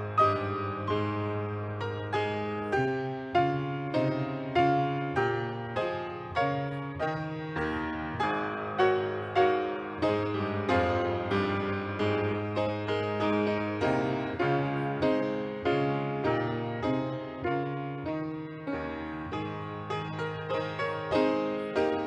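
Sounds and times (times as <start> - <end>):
grand piano solo: 0.0 - 22.0.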